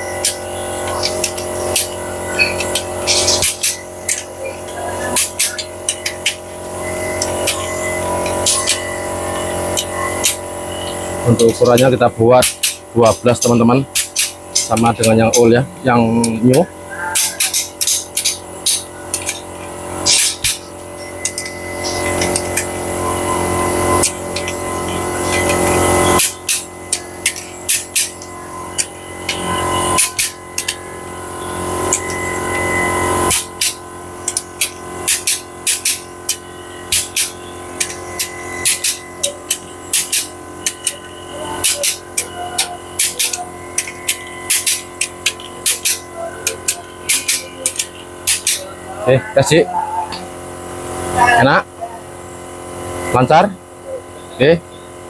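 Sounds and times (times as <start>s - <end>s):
ratchet wrench clicking: 0.2s - 8.8s, 9.8s - 10.4s, 11.2s - 15.6s, 17.2s - 22.7s, 25.2s - 30.8s, 33.3s - 41.0s, 41.6s - 48.6s.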